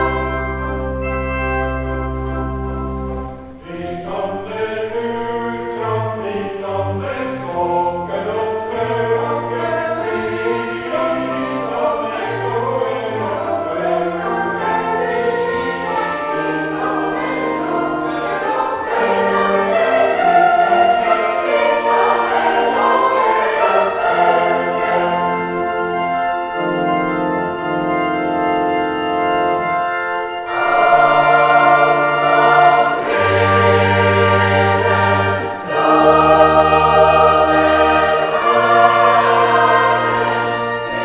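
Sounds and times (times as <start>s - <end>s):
choir singing: 0.0s - 41.0s
held organ chord: 0.0s - 41.0s.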